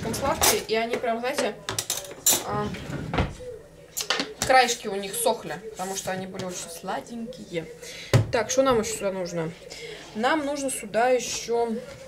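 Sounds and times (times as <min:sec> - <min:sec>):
woman speaking: 0:00.0 - 0:01.6, 0:02.4 - 0:03.0, 0:04.4 - 0:12.0.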